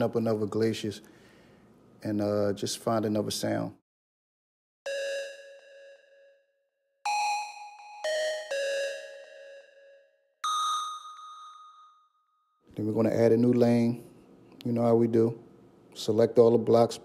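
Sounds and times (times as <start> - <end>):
bell-like synthesizer notes: 4.9 - 12.7.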